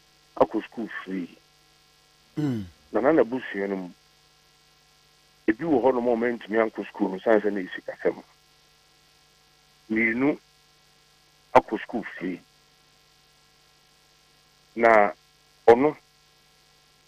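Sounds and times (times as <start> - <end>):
electrical mains hum: 0.0 - 17.0
voice over telephone line: 0.4 - 1.3, 3.0 - 3.9, 5.5 - 8.2, 9.9 - 10.4, 11.6 - 12.4, 14.8 - 15.1, 15.7 - 16.0.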